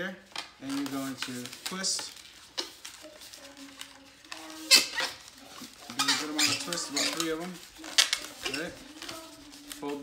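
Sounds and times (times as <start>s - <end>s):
rubber balloon squeaking: 4.5s - 8.9s.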